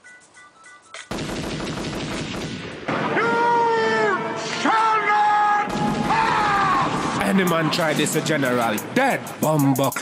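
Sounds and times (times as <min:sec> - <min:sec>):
machine-gun fire sound effect: 0:01.1 - 0:03.0.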